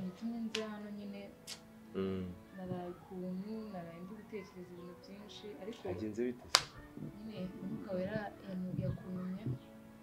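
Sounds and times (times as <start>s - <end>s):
soft speech: 2.0s - 6.4s, 7.0s - 9.7s.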